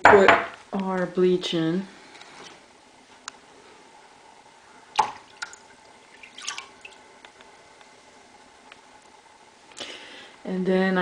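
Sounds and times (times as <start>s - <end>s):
drips falling into water: 4.9s - 7.0s
liquid splashing into water: 5.0s - 7.0s.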